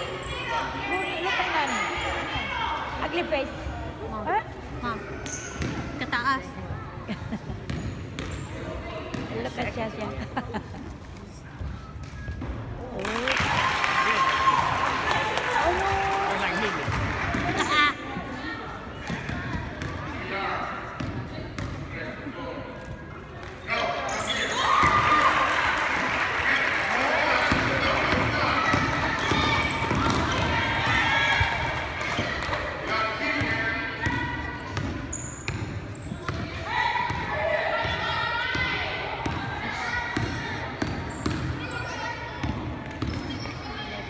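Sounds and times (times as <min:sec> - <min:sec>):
spectators talking and calling out: 0:00.0 - 0:11.8, 0:12.6 - 0:44.0
basketball bouncing on gym floor: 0:07.6 - 0:08.4, 0:27.4 - 0:31.1, 0:40.2 - 0:41.6.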